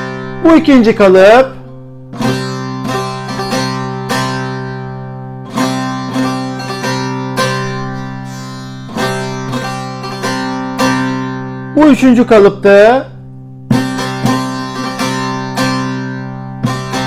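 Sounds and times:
plucked lute melody: 0.0s - 17.0s.

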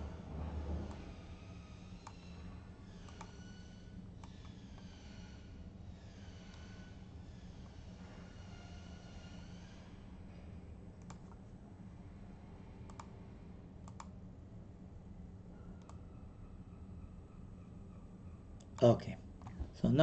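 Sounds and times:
low room and computer hum: 0.0s - 20.0s
computer mouse clicking: 2.0s - 2.2s, 3.1s - 3.4s, 11.0s - 11.4s, 12.9s - 13.1s, 13.8s - 14.1s.

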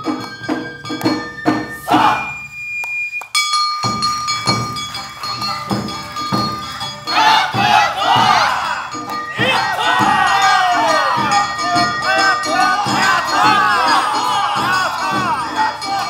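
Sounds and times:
taiko drum beats: 0.0s - 2.6s, 3.8s - 16.0s
bamboo flute melody: 0.0s - 16.0s
dancers shouting chanted calls: 1.8s - 2.4s, 7.0s - 16.0s.

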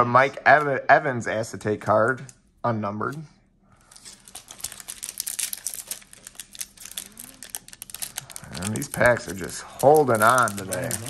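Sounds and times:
foil wrapper crinkling: 3.8s - 11.0s.

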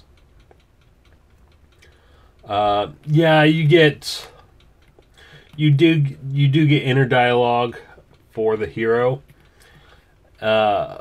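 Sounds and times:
faint regular ticking: 0.0s - 11.0s
low room hum: 0.0s - 11.0s.

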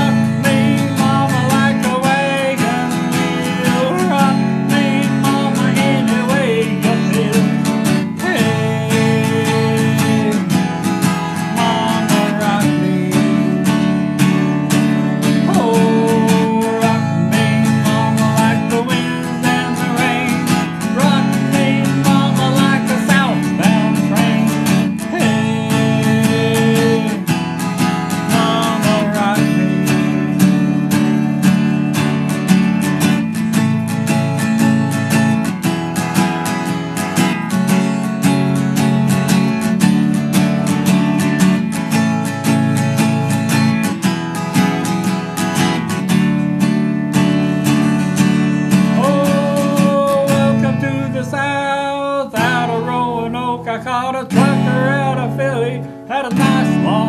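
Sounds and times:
voice: 0.0s - 7.5s, 8.2s - 10.5s, 15.5s - 27.2s, 49.0s - 57.0s
acoustic guitar strumming: 0.0s - 57.0s.

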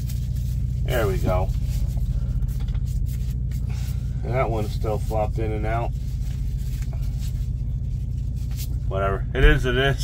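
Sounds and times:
diesel engine idling: 0.0s - 10.0s.

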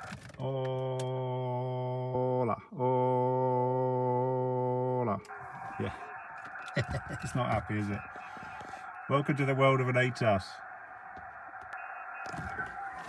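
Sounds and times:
man holding a steady aaah: 0.4s - 5.3s.

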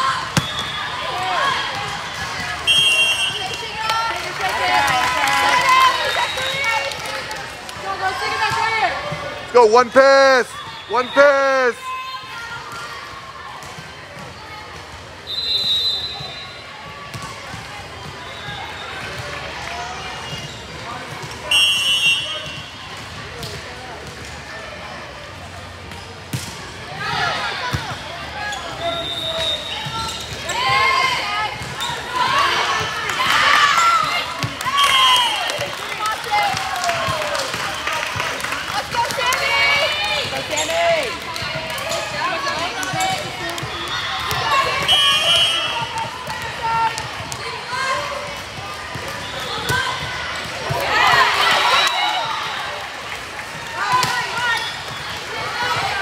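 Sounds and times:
volleyball contacts: 0.0s - 10.0s
crowd shouting and cheering: 0.0s - 25.8s, 26.6s - 56.0s
referee whistle: 0.3s - 1.2s, 2.6s - 3.4s, 15.2s - 16.6s, 21.4s - 22.8s, 28.7s - 30.2s, 44.5s - 46.0s, 51.4s - 52.7s
sneaker squeaks on court: 27.8s - 30.8s.

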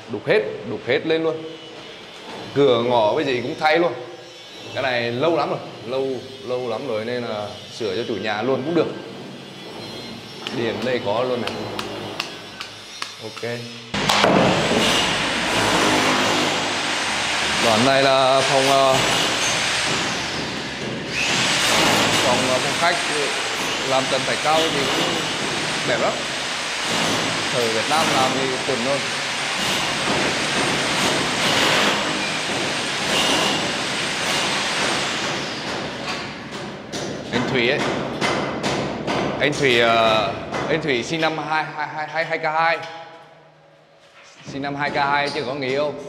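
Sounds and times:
machine motor running loudly: 13.9s - 35.8s.

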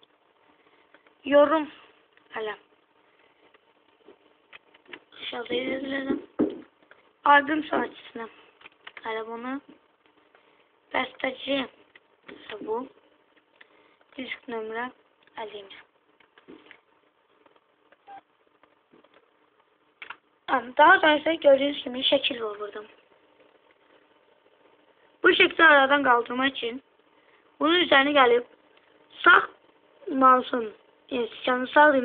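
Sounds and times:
faint room hiss: 0.0s - 32.0s.

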